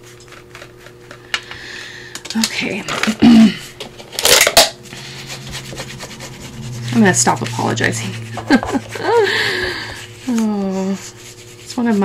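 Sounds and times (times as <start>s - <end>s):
faint steady hum: 0.2s - 12.0s.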